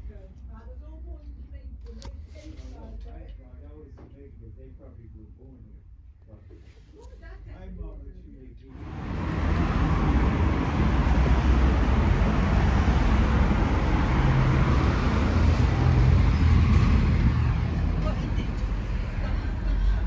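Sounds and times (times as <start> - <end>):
road traffic rumble: 8.7 - 20.0.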